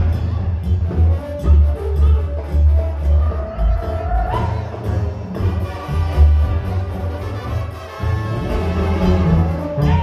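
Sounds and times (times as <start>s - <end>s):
brass section playing: 4.3s - 10.0s.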